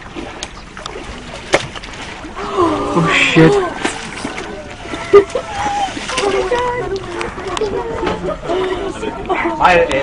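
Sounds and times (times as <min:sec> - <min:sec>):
water sloshing and splashing: 0:00.0 - 0:10.0.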